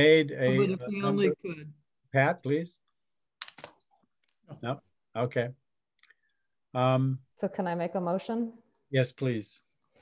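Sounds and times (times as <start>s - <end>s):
person saying a word: 0.5s - 1.4s.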